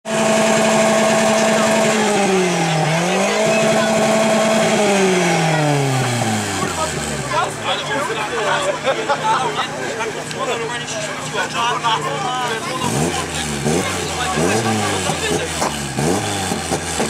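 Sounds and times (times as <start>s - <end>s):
car engine revving: 0.0s - 8.8s, 12.4s - 17.0s.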